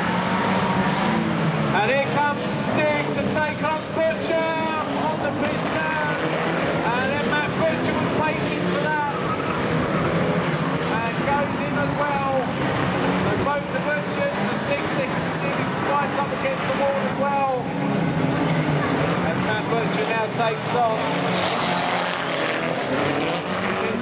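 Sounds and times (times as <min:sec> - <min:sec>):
race car engines revving: 0:00.0 - 0:24.0.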